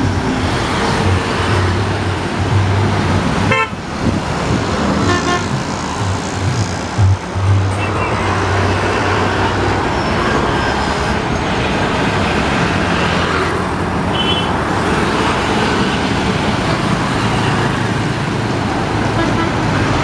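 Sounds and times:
bus engines rumbling: 0:00.0 - 0:20.0
vehicle horn: 0:03.5 - 0:03.8, 0:05.0 - 0:05.6, 0:14.1 - 0:14.6, 0:19.2 - 0:19.6.

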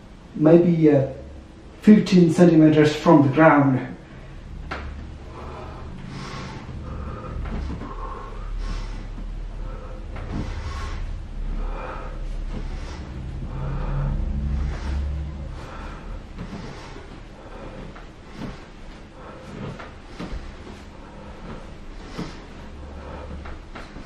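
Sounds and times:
low rumble: 0:00.0 - 0:24.0
man breathing hard: 0:04.0 - 0:24.0.

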